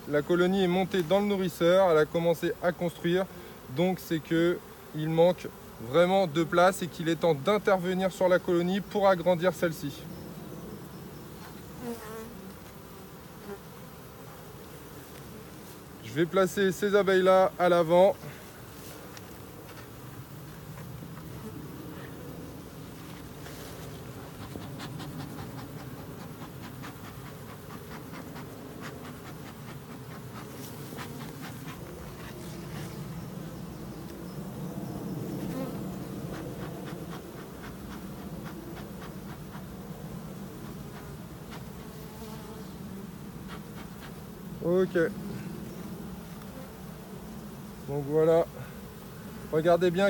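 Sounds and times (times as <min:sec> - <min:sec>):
honeybees buzzing: 0:00.0 - 0:50.0.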